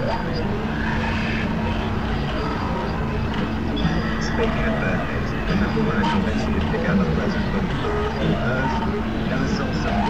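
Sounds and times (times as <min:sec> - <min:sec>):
constant low hum: 0:00.0 - 0:10.0
indistinct voices: 0:00.0 - 0:10.0.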